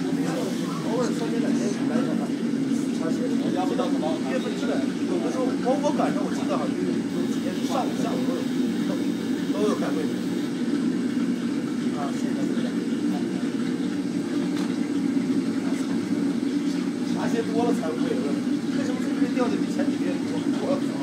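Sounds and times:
faint voices talking: 0.0 - 21.0
kitchen equipment drone: 0.0 - 21.0.

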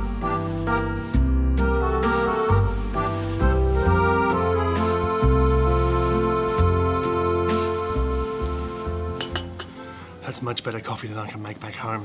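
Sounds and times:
background music: 0.0 - 12.0
espresso cup clinking: 9.2 - 9.8.

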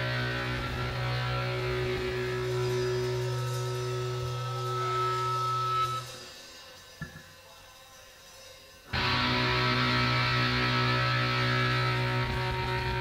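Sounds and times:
high steady tone: 0.4 - 11.1
rock band playing live: 8.9 - 13.0.

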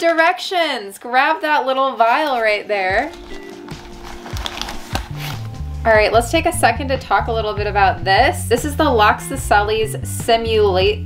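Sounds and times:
packing material rustling: 2.1 - 5.7
background music with bass line: 3.0 - 11.0.

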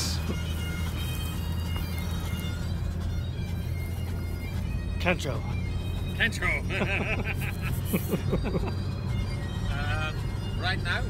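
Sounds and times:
bagpipe music: 0.0 - 11.0
car driving rumble: 0.0 - 11.0.

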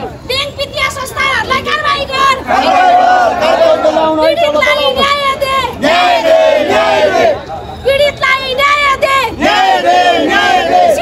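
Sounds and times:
crowd shouting a slogan: 0.7 - 11.0.

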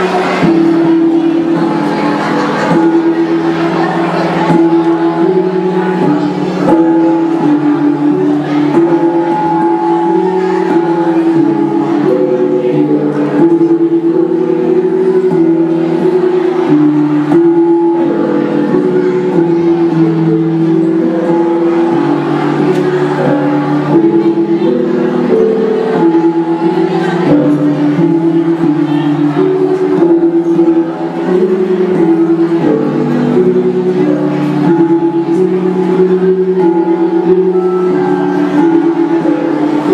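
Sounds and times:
bronze gongs ringing: 0.0 - 39.9.

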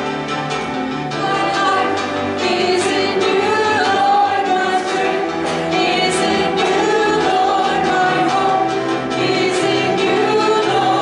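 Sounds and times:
women singing: 1.1 - 11.0.

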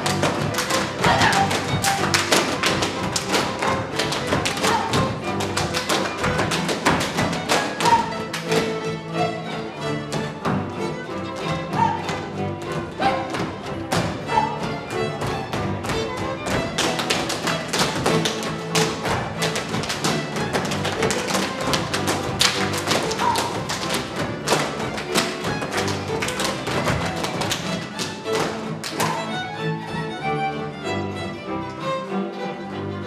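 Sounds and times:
fiddle and strings dance music: 0.0 - 33.0.

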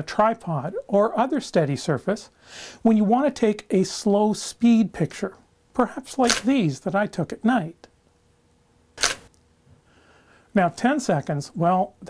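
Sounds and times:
camera shutter click: 6.2 - 6.5, 9.0 - 9.3.

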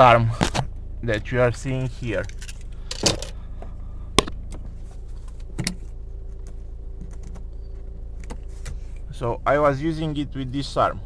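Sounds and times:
low hum inside car: 0.0 - 11.0.

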